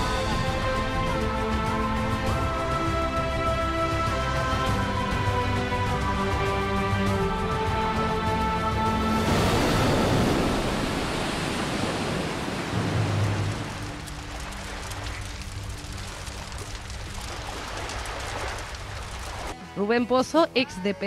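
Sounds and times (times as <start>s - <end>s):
faint crackles: 13.2s - 19.6s.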